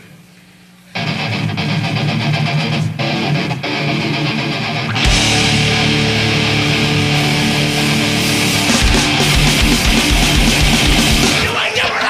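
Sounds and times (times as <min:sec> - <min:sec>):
distorted electric guitar riff: 0:01.0 - 0:12.0.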